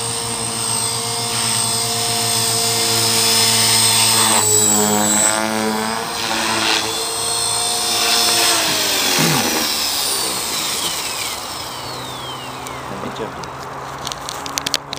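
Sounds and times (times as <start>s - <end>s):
rc helicopter rotor whine: 0.0s - 14.2s.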